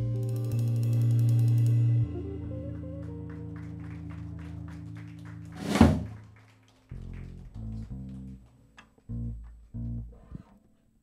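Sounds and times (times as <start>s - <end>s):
drum and cymbal crash: 5.6s - 6.1s
low plucked notes: 6.9s - 8.4s, 9.0s - 10.5s.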